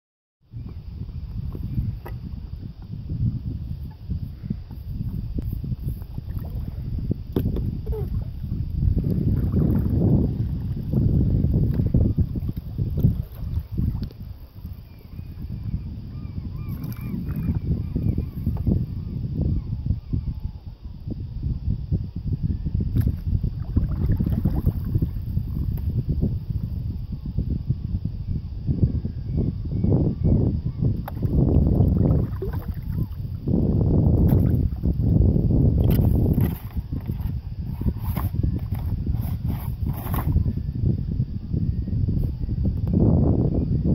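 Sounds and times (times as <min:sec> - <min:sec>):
wind buffeting microphone: 0:00.4 - 0:43.9
water slapping and splashing: 0:23.0 - 0:25.2, 0:31.1 - 0:33.2.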